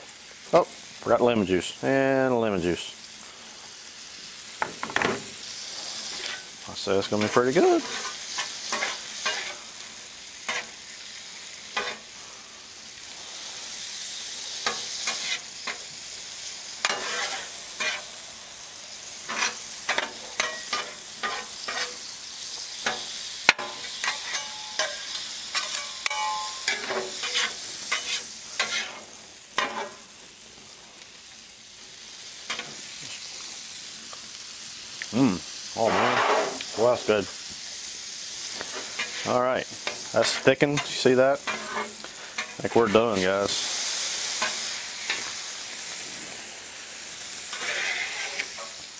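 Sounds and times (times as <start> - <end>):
sauce sizzling on a griddle: 0.0 - 48.9
metal spatula scraping steel: 7.1 - 9.6, 10.4 - 10.8, 11.7 - 12.1, 14.6 - 15.8, 16.8 - 18.1, 19.3 - 22.1, 22.8 - 30.0, 35.8 - 36.6, 38.7 - 43.1, 47.5 - 48.8.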